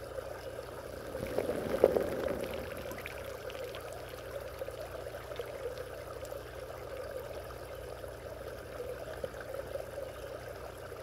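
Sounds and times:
water splashing: 0:01.0 - 0:03.9
spray pattering on pond surface: 0:01.0 - 0:04.3.

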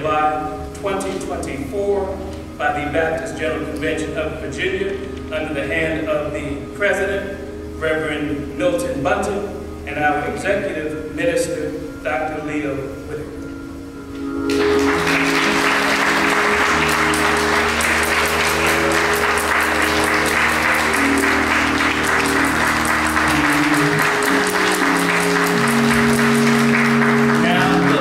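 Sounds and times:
sustained chords: 0:00.0 - 0:28.0
congregation applauding: 0:14.2 - 0:28.0.

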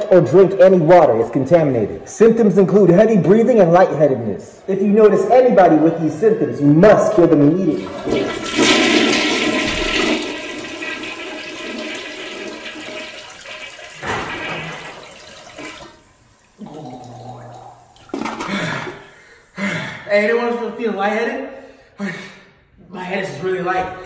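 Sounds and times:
toilet flushing: 0:07.6 - 0:19.0.

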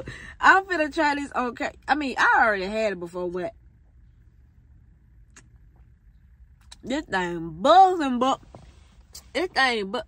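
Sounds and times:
car idling: 0:00.0 - 0:10.0.

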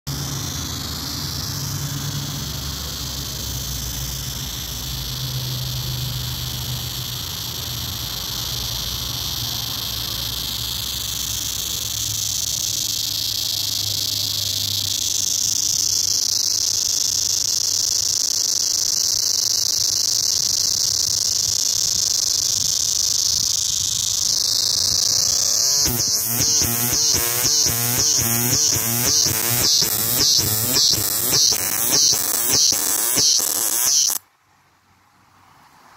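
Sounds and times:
cicada buzzing: 0:00.1 - 0:34.2.

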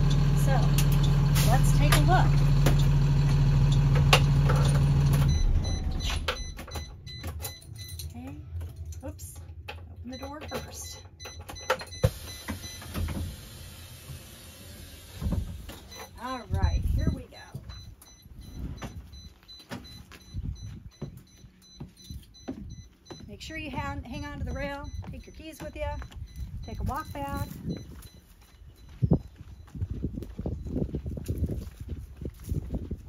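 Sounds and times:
bus engine idling: 0:00.0 - 0:06.4.

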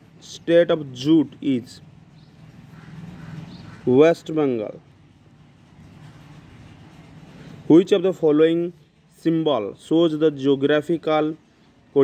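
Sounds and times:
man speaking: 0:00.2 - 0:01.9, 0:03.9 - 0:04.9, 0:07.7 - 0:12.0.

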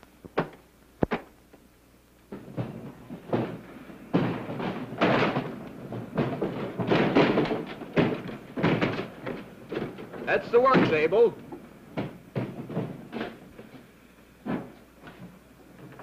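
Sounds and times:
crates knocking and scraping: 0:02.3 - 0:16.0.

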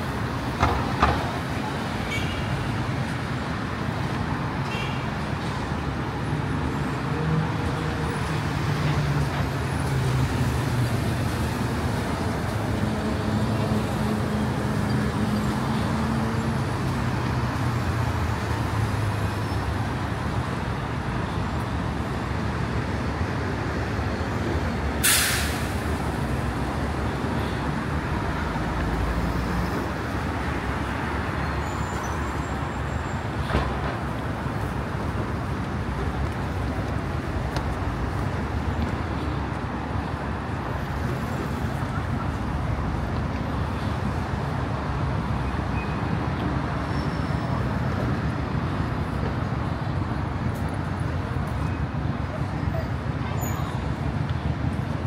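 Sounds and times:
road traffic tyre noise: 0:00.0 - 0:55.0
short sharp hiss: 0:25.0 - 0:25.8.

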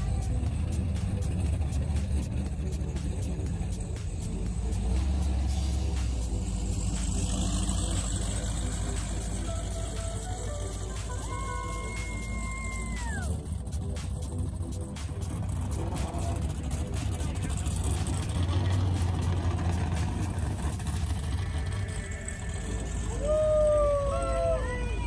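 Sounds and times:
boat engines idling: 0:00.0 - 0:25.0
person cheering whoop: 0:11.2 - 0:13.4, 0:23.1 - 0:25.0
person shouting: 0:11.2 - 0:13.4, 0:23.1 - 0:25.0.

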